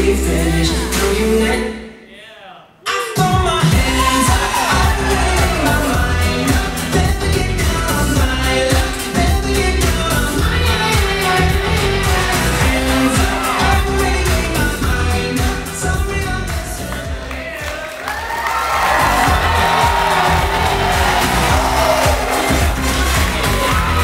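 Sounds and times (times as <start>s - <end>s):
pop song with singing: 0.0s - 24.0s
audience cheering and whooping: 3.7s - 8.8s, 10.5s - 14.8s, 16.7s - 24.0s.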